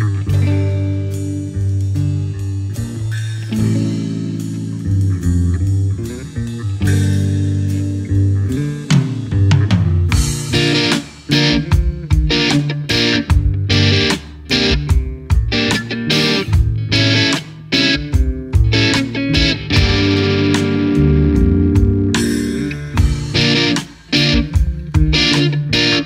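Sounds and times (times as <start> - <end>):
bass: 0.0 - 26.0
drums and cymbals: 0.0 - 26.0
electric guitar chords: 0.0 - 26.0.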